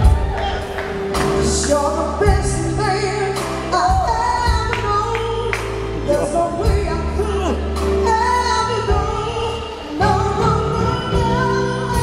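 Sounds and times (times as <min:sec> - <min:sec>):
woman singing: 0:01.2 - 0:12.0.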